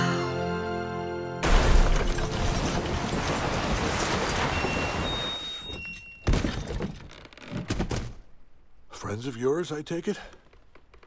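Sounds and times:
debris clattering: 1.4 - 7.1
sleigh sliding and scraping in snow: 2.3 - 5.7.

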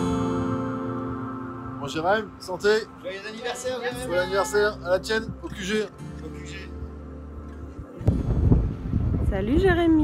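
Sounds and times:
wind buffeting microphone: 7.7 - 10.0.

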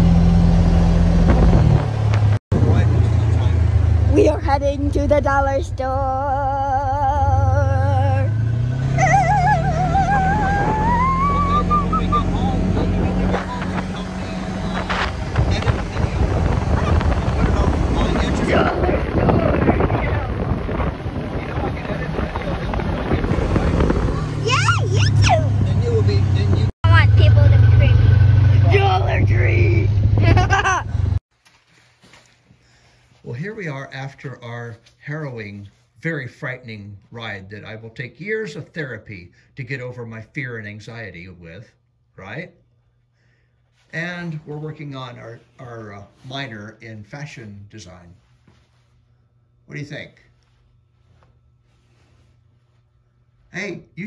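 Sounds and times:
rough wind: 0.0 - 3.1, 7.4 - 31.2
utv engine speeding up: 0.0 - 31.2
voices talking: 2.7 - 30.6.

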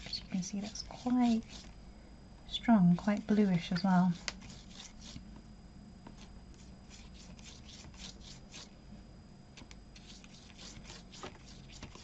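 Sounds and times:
brush swishing across paper: 10.0 - 12.0.

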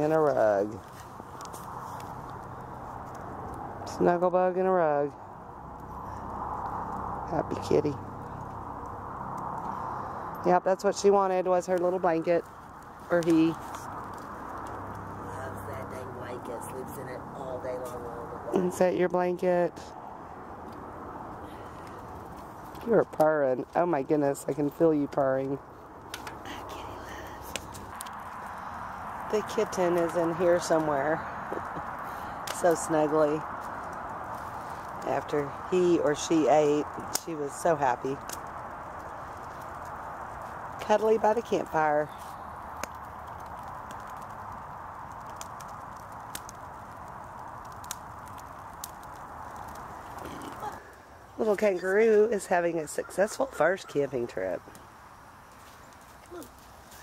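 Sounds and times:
campfire pops and crackles: 0.0 - 57.0.

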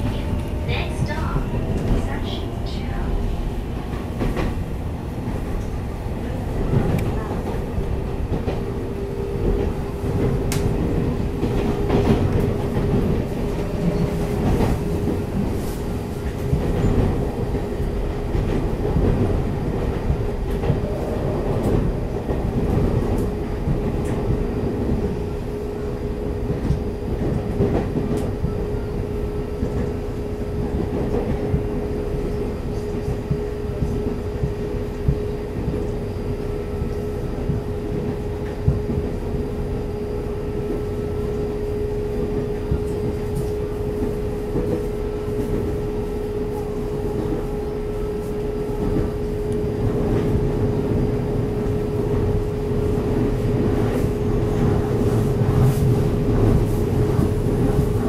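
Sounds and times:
clicks of wheels on rail: 0.0 - 58.0
train wheels rumbling on rail: 0.0 - 58.0.

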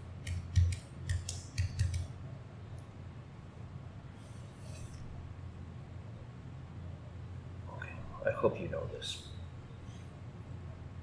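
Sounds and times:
computer keyboard key clicks: 0.2 - 2.1.

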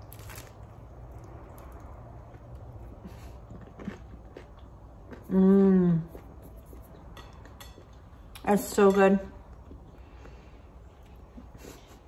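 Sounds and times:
bite into crisp food: 0.0 - 2.0
quiet chewing: 1.1 - 8.4.

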